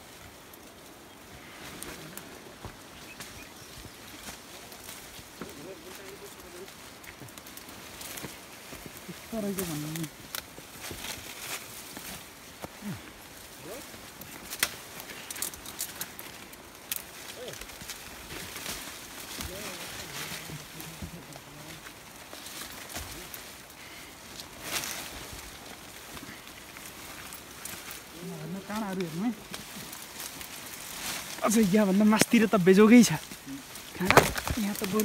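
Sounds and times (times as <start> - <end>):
undergrowth rustling and snapping: 0.0 - 35.0
sharp twig cracks: 14.3 - 19.4, 33.9 - 35.0
faint voices: 19.3 - 22.1.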